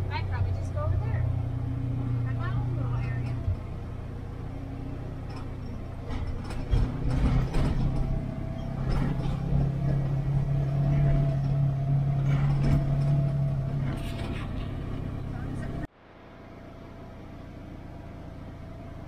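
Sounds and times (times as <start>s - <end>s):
vehicle engine droning: 0.0s - 19.0s
rattles and knocks from bumps: 2.8s - 3.9s, 5.2s - 15.9s.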